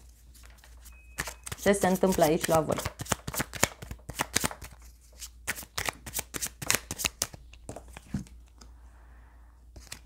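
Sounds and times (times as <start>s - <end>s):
cards being shuffled: 0.3s - 8.7s, 9.8s - 10.0s.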